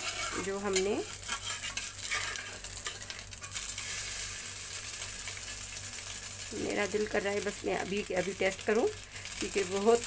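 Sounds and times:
metal spatula scraping pan: 0.0s - 3.6s
toast sizzling in oil: 0.0s - 10.0s.

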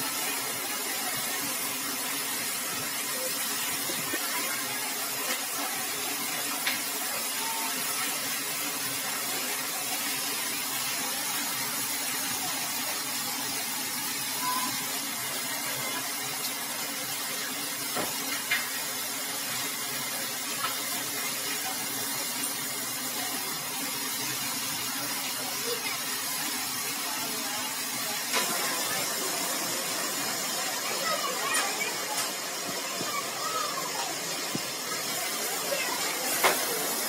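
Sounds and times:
water spraying from burst pipe: 0.0s - 37.0s.

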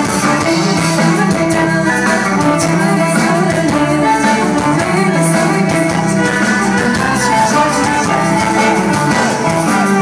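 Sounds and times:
drum kit: 0.0s - 10.0s
electric guitars: 0.0s - 10.0s
man singing: 0.0s - 10.0s.

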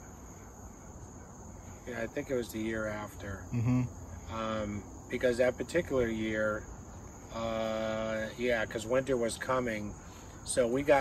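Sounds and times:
insect chorus trilling: 0.0s - 11.0s.

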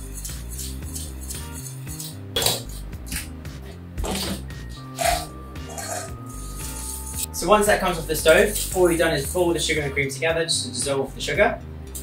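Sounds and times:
whisk scraping a metal saucepan: 0.0s - 3.2s, 4.3s - 7.2s
background music: 0.0s - 12.0s.

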